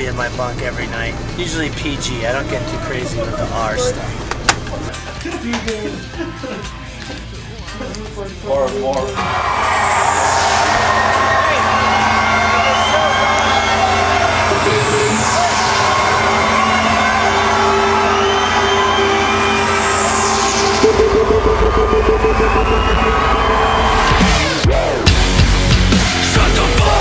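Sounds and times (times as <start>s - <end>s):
droning rock music: 0.0s - 27.0s
heavy pulsing low beat: 0.0s - 27.0s
crowd cheering: 8.7s - 27.0s
high falling sweep: 9.2s - 25.1s.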